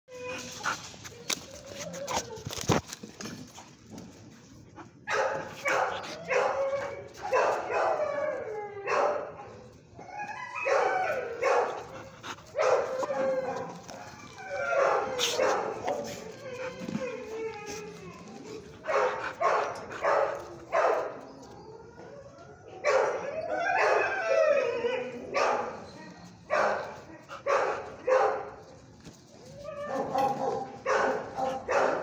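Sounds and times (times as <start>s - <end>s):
sharp clicks and scuffs: 0.2s - 7.6s.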